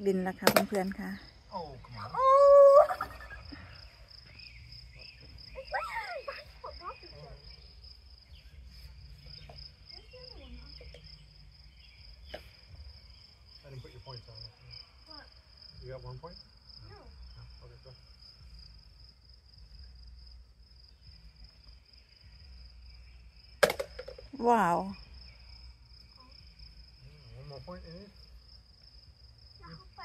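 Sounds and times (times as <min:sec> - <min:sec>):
crickets chirping: 0:00.0 - 0:30.0
loud high-pitched shout: 0:05.6 - 0:06.4.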